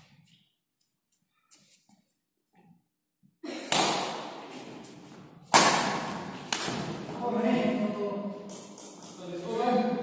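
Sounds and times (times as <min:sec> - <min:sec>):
racket hitting shuttlecock: 0:03.7 - 0:04.6, 0:05.5 - 0:07.1.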